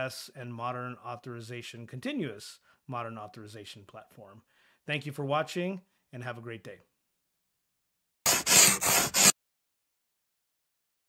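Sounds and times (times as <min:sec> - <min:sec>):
rough scraping strokes: 0:08.3 - 0:09.4.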